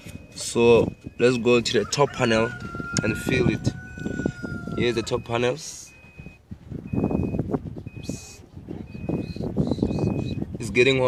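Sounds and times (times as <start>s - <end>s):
electronic beeper beeping: 0.0s - 1.7s, 4.9s - 10.5s.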